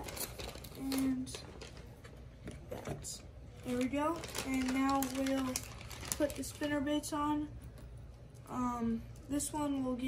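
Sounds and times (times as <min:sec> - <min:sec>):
plastic bag rustling: 0:00.0 - 0:07.1.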